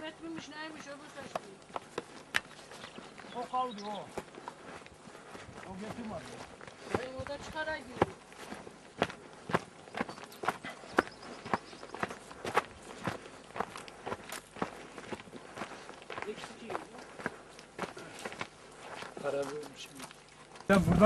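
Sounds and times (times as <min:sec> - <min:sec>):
footsteps scuffing: 0:00.0 - 0:21.0.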